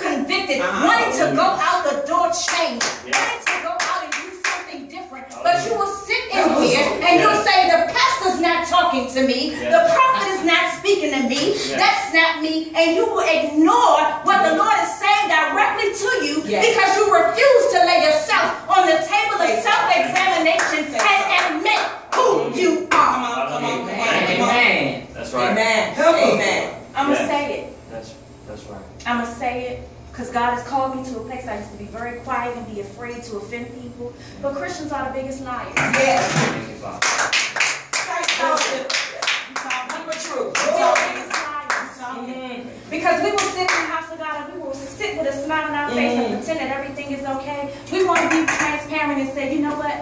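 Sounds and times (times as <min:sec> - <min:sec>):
woman preaching: 0:00.0 - 0:27.7, 0:29.1 - 0:36.5, 0:37.9 - 0:50.0
voices speaking: 0:00.0 - 0:37.0, 0:38.0 - 0:50.0
hands clapping: 0:02.5 - 0:04.7, 0:20.1 - 0:22.3, 0:35.8 - 0:41.9, 0:48.1 - 0:48.8.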